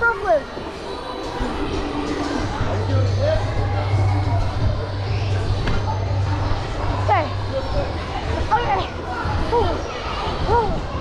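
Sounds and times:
distant children's chatter: 0.0s - 11.0s
faint background music: 0.0s - 11.0s.

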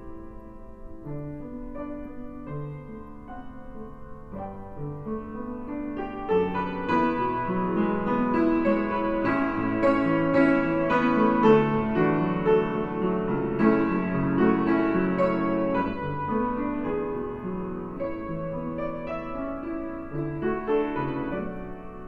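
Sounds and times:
piano playing hymn chords: 0.0s - 22.0s.

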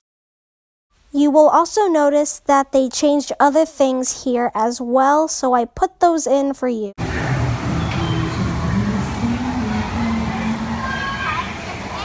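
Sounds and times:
steady rushing background: 7.0s - 10.5s
held low note rising in pitch: 7.0s - 11.0s
indistinct voices: 7.0s - 12.0s.

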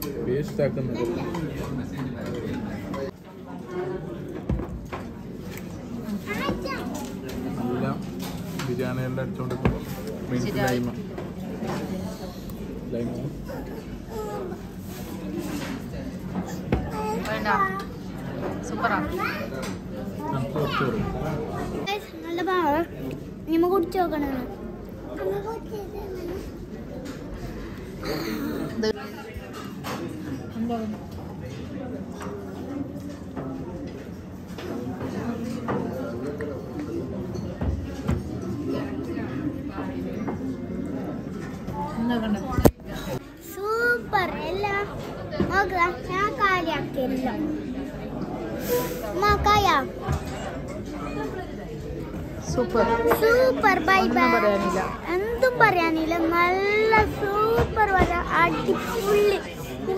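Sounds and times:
dining room chatter: 0.0s - 59.9s
children's voices: 6.2s - 7.2s, 19.0s - 26.9s, 43.1s - 47.5s, 49.0s - 50.3s, 52.8s - 59.9s
girl speaking: 43.4s - 47.2s, 53.0s - 59.5s.

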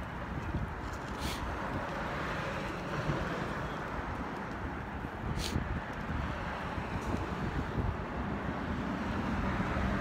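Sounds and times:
wind buffeting microphone: 0.0s - 2.3s, 3.9s - 10.0s
traffic rumble: 0.0s - 10.0s
brief high hiss: 1.2s - 1.5s, 5.4s - 5.6s.

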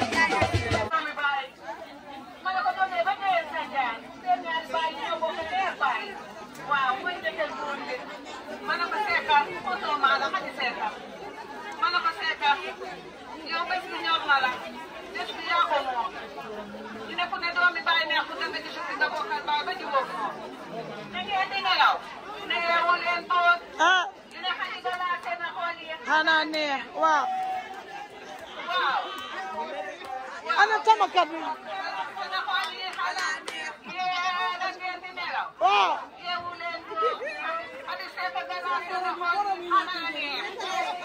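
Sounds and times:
people talking and chattering: 0.0s - 41.0s.

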